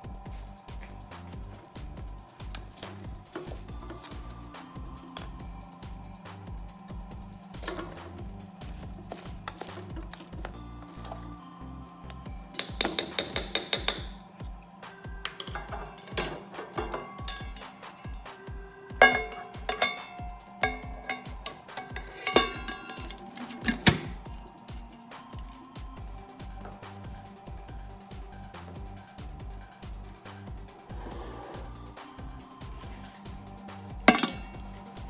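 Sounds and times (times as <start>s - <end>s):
background music with beat: 0.0s - 35.0s
utensil clinking against metal pot: 7.5s - 11.2s, 12.5s - 14.2s, 15.2s - 18.3s, 19.0s - 24.3s, 33.9s - 35.0s
pot lid clanging: 7.6s - 8.2s, 15.2s - 18.4s, 19.0s - 24.3s, 34.0s - 34.9s.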